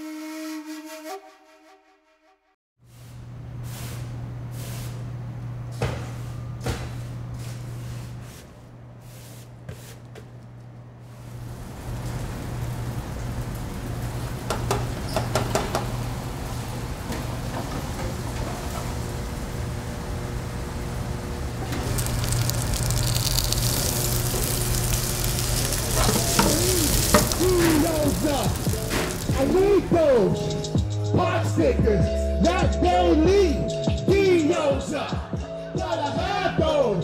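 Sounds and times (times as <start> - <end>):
food sizzling: 18.9 - 30.8
low hum: 19.3 - 30.8.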